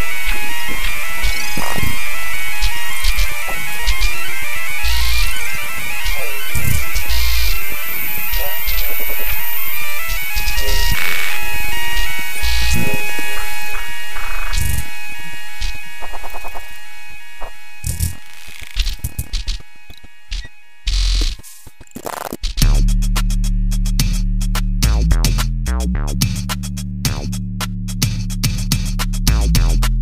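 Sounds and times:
glitchy electronic music: 0.0s - 26.5s.

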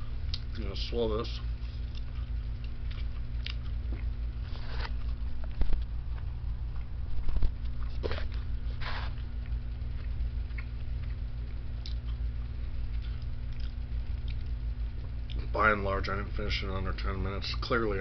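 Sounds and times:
steady low hum: 0.0s - 18.0s.

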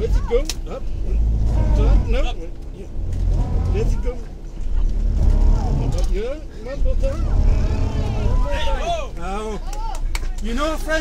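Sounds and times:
engine labouring under load: 0.0s - 11.0s.

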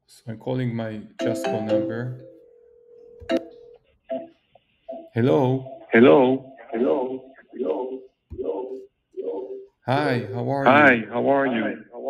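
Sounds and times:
voice over phone line: 1.2s - 2.2s, 5.2s - 7.9s, 9.9s - 12.0s
telephone call tone: 1.2s - 3.7s.

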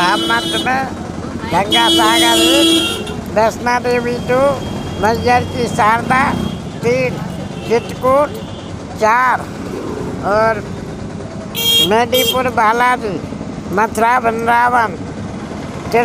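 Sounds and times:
man talking: 0.0s - 9.5s, 10.2s - 10.7s, 11.8s - 15.0s.

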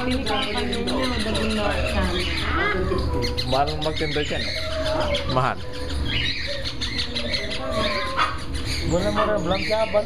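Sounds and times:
low room rumble: 0.0s - 10.0s
parrots calling: 0.0s - 10.0s.

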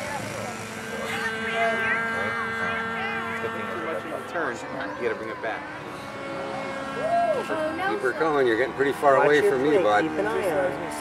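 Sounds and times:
model airplane motor droning: 0.0s - 11.0s.

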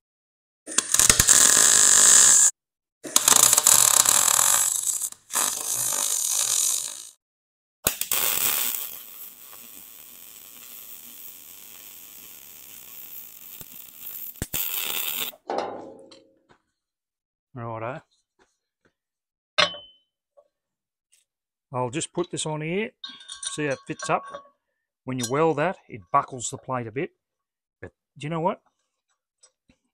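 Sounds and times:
mig welder crackling: 0.7s - 2.5s, 3.1s - 7.2s, 7.9s - 15.4s.

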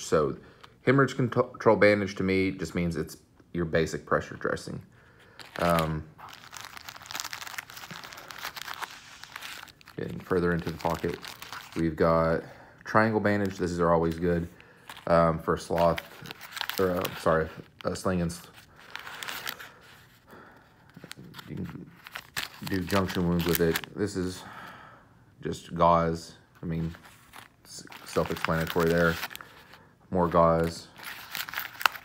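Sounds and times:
plastic packets crinkling: 5.3s - 12.3s, 12.9s - 20.2s, 20.8s - 24.0s, 26.6s - 32.0s.

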